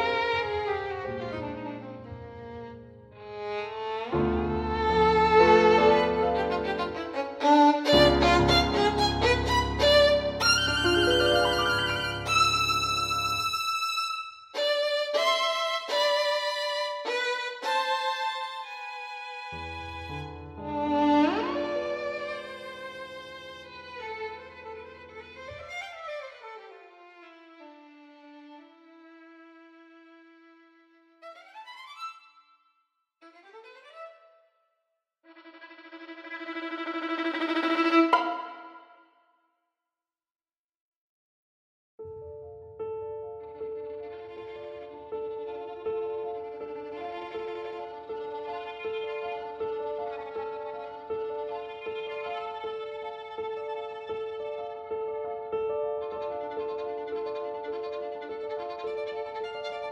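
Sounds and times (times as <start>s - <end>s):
solo violin: 0.0s - 34.5s, 35.3s - 39.0s, 42.8s - 59.9s
violin tremolo: 4.6s - 24.5s, 35.3s - 39.0s.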